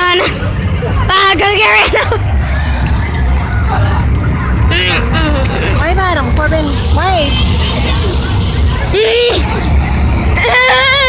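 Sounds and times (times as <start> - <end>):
vehicle engine rumbling: 0.0 - 11.0
high voices calling out: 2.4 - 11.0.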